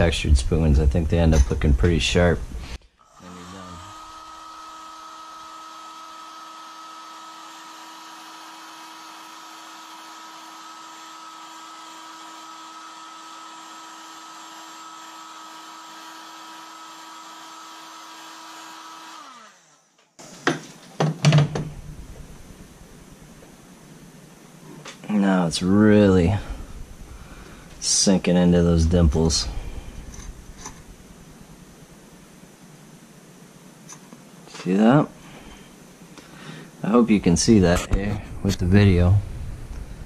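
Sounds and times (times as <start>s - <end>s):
heat gun winding down: 3.0s - 20.6s
heat gun running: 3.0s - 20.7s, 26.2s - 28.0s.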